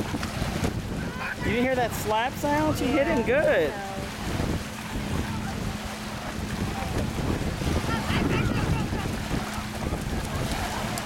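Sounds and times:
small waves lapping on sand: 0.0 - 11.0
wind on microphone: 0.0 - 11.0.

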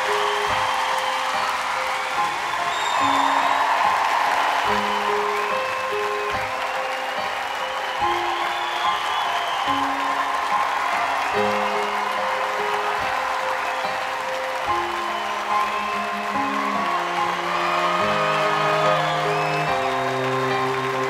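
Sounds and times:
audience applauding and cheering: 0.0 - 21.0
instrumental music with held notes: 0.0 - 21.0.

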